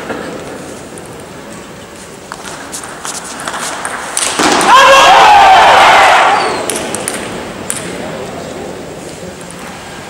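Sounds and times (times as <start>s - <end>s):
crowd cheering: 4.6s - 7.0s
person shouting: 4.7s - 5.6s
table tennis ball clicks: 6.6s - 7.9s.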